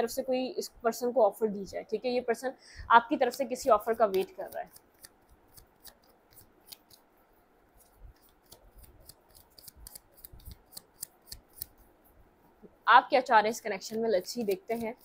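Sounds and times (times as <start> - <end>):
woman speaking: 0.0 - 4.7, 12.8 - 15.0.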